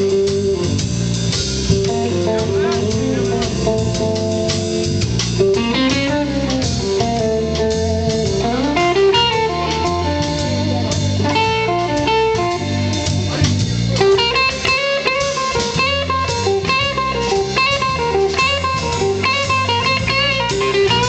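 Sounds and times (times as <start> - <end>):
drum kit: 0.0 - 21.0
electric guitar playing: 0.0 - 21.0.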